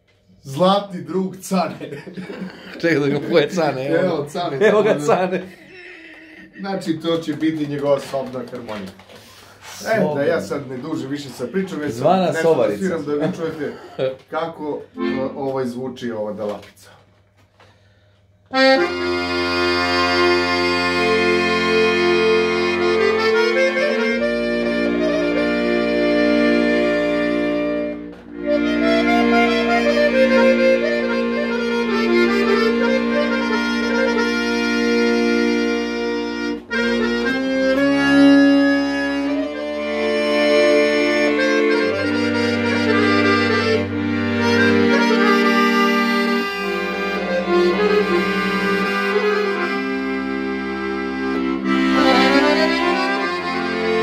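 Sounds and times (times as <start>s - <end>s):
button accordion melody: 0.0s - 15.8s, 17.5s - 54.0s.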